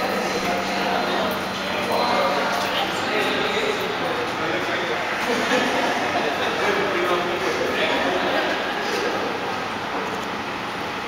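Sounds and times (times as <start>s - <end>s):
people talking indistinctly: 0.0s - 9.5s.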